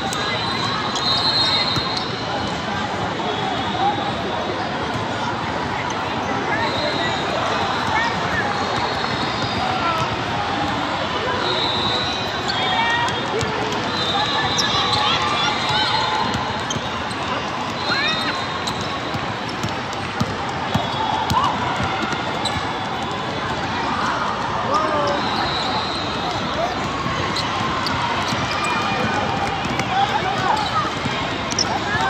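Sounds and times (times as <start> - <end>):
sneaker squeaks: 0.0 - 2.6, 6.7 - 10.2, 11.3 - 23.3, 24.7 - 32.0
crowd chatter: 0.0 - 32.0.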